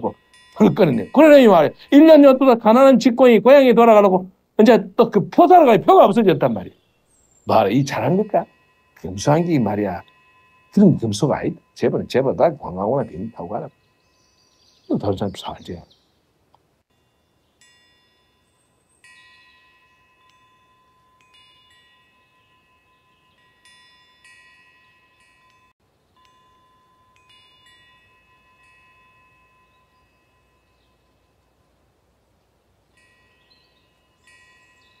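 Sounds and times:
metal wind chimes ringing: 0.0s - 16.2s, 16.8s - 35.0s.

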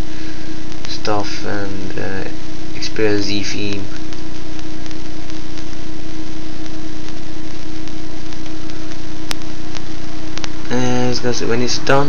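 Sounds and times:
steady hum and hiss: 0.0s - 12.0s.

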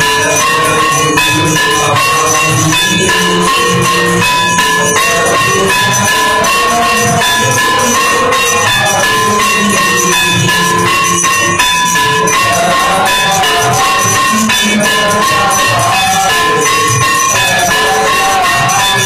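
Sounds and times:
devotional music with ringing percussion: 0.0s - 19.0s.

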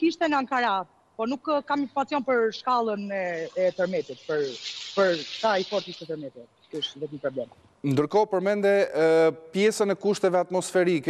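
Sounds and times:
person speaking: 1.3s - 11.0s
steady hiss: 1.7s - 11.0s.

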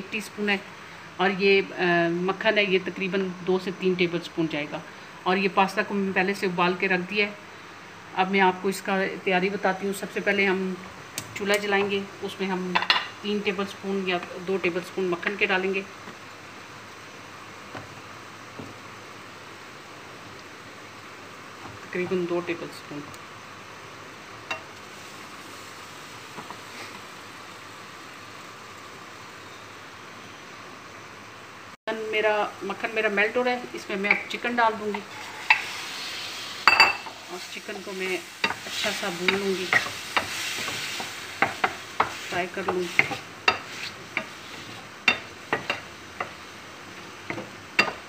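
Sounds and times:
faint hiss from frying pan: 0.0s - 48.0s
chicken sizzling in butter: 24.3s - 29.8s, 34.7s - 48.0s.

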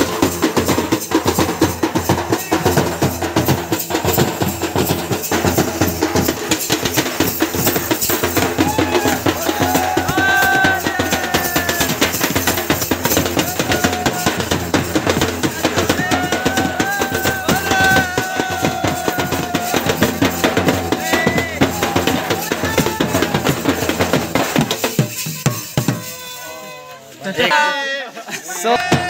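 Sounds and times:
large flat drum beaten with stick: 0.0s - 26.1s
hand-struck barrel drum: 0.0s - 26.4s, 28.8s - 29.0s.

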